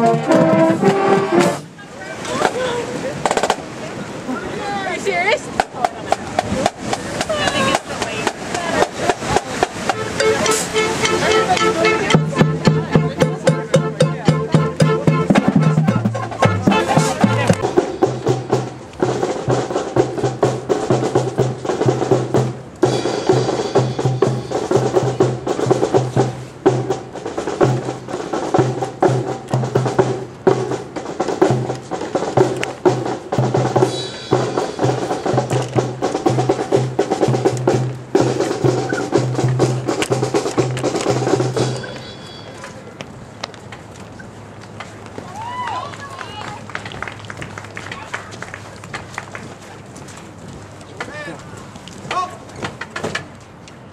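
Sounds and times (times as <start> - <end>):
marching band playing: 0.0 - 4.0, 4.7 - 42.8
faint voices: 0.0 - 18.2, 40.8 - 53.0.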